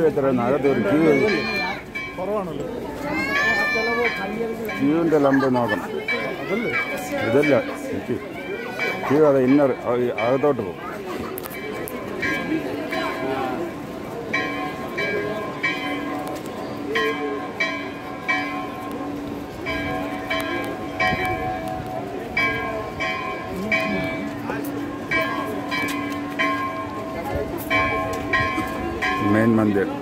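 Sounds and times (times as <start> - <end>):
crowd chatter: 0.0 - 30.0
temple bells ringing: 0.0 - 30.0.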